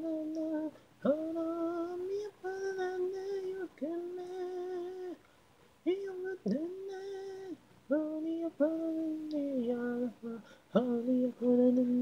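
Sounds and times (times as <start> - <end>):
person singing a cappella: 0.0 - 12.0.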